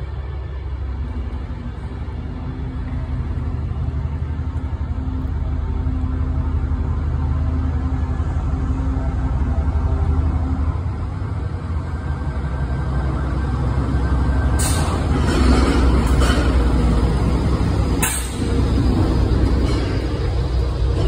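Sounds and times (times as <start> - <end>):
diesel locomotive engine drone: 0.0 - 21.0.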